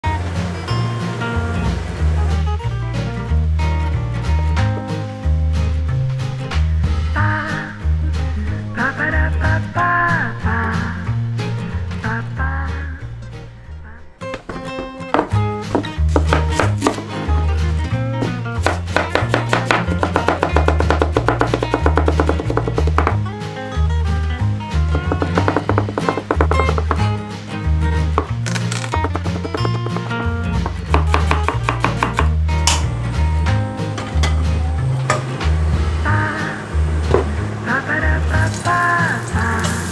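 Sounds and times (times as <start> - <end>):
knife chopping on cutting board: 14.4 - 17.2, 18.2 - 23.2, 24.9 - 27.1, 28.2 - 32.9
music with bass beat: 14.9 - 28.4, 29.0 - 36.2.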